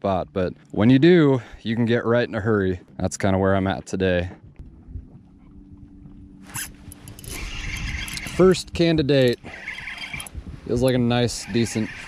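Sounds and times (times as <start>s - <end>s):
faint low hum: 0.0s - 10.6s
fishing reel whirring: 6.4s - 8.7s, 9.3s - 10.4s.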